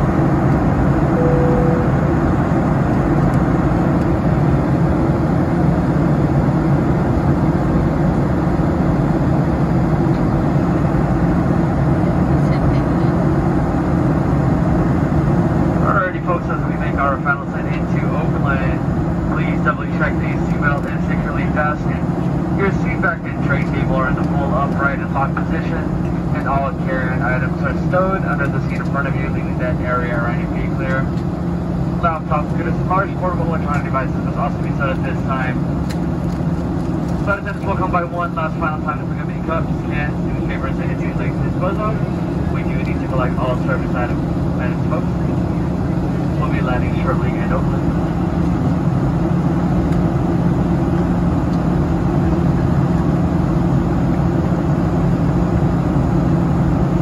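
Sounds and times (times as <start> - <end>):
airplane cabin engine drone: 0.0 - 57.0
cabin announcement over speakers: 1.1 - 2.6, 15.8 - 31.2, 32.0 - 35.6, 37.2 - 48.2.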